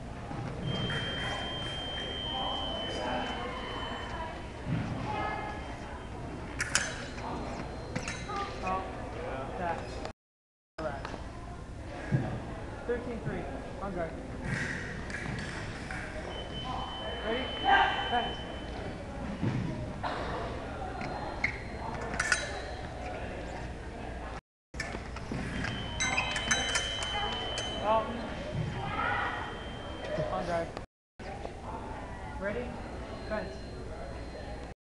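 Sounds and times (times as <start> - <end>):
fencing blades clinking: 6.6 - 7.2, 22.0 - 22.8, 25.6 - 28.0.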